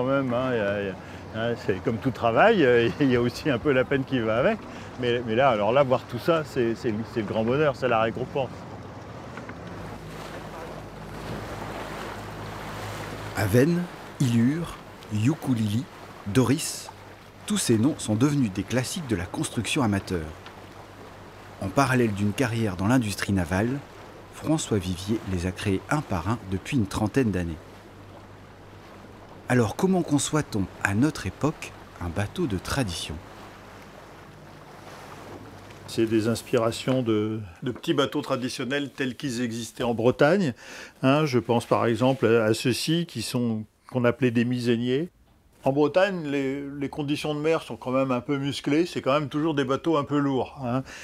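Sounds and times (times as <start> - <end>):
water noise: 0.0 - 51.0
wind buffeting microphone: 1.0 - 36.5.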